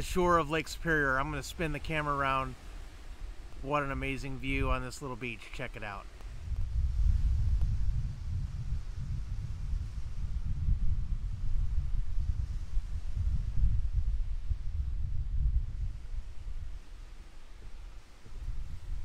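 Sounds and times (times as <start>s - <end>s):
small waves on pebbly shore: 0.0s - 6.4s
wind buffeting microphone: 0.0s - 19.0s.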